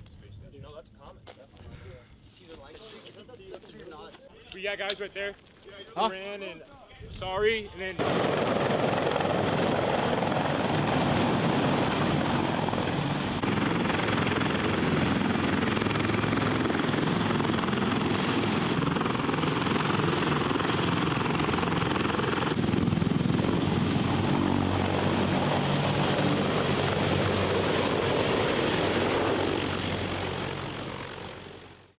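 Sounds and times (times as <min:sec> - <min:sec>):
helicopter rotor thrum: 0:08.0 - 0:31.5.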